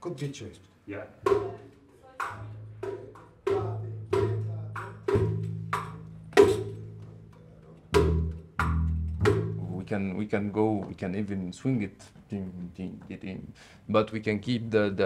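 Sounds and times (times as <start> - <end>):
plucked and struck notes: 1.2 - 10.0
deep sustained bass notes: 8.1 - 10.0.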